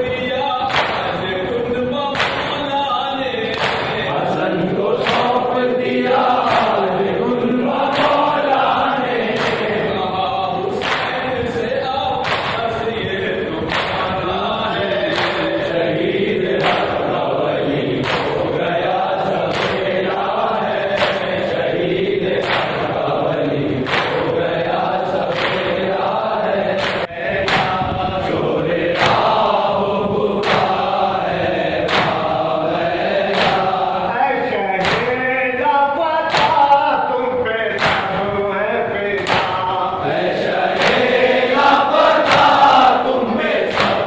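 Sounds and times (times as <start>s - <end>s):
group chanting: 0.0s - 44.0s.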